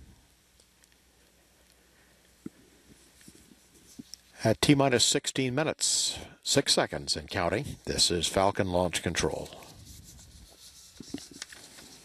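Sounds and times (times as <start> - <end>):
microphone handling noise: 7.6 - 7.9.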